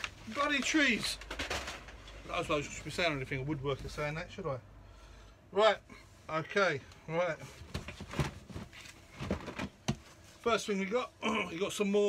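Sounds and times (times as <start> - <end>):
paper and cardboard rustling: 0.0 - 3.0.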